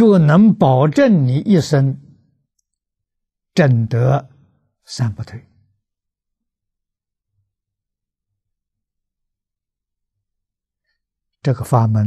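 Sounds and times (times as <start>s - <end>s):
man speaking: 0.0s - 2.0s, 4.9s - 5.5s, 11.4s - 12.0s.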